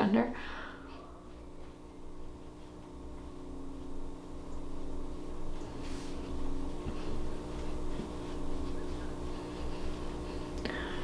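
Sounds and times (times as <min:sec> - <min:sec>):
steady low hum with tones: 0:00.0 - 0:11.0.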